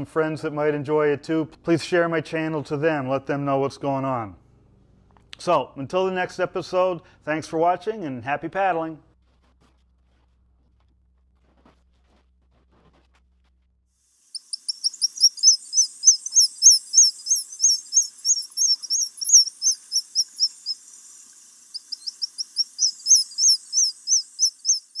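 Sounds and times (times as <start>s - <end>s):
bird chirping rapidly: 14.4s - 25.0s.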